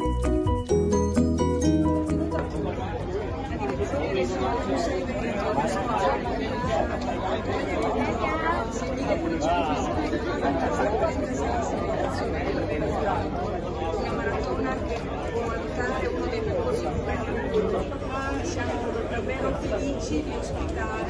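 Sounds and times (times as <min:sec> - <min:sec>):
crowd chattering: 0:00.0 - 0:21.0.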